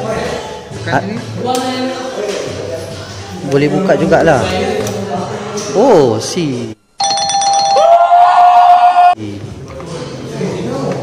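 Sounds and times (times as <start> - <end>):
voices in room: 0.0 - 8.4, 9.1 - 11.0.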